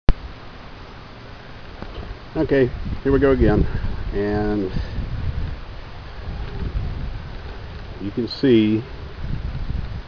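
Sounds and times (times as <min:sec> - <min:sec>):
wind buffeting microphone: 0:01.0 - 0:10.0.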